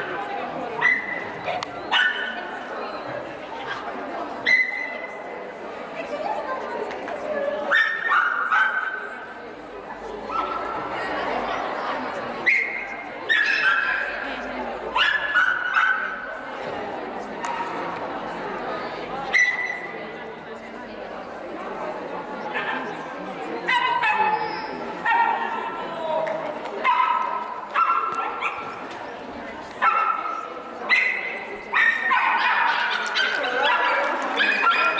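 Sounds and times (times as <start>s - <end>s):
murmur in a hall: 0.0s - 34.9s.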